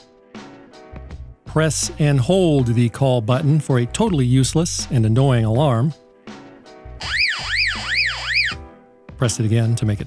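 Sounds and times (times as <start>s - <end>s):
radio alarm siren tone: 7.0s - 8.6s.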